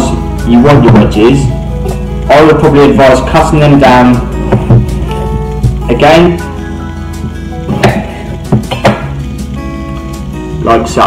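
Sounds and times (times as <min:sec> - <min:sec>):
background music: 0:00.0 - 0:11.0
knife knocking on chopping board: 0:07.7 - 0:09.1.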